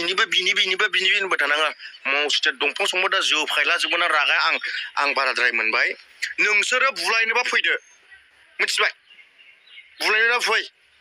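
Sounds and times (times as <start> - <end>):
man speaking: 0.0 - 7.8, 8.6 - 9.0, 10.0 - 10.7
faint outdoor background sound: 0.0 - 11.0.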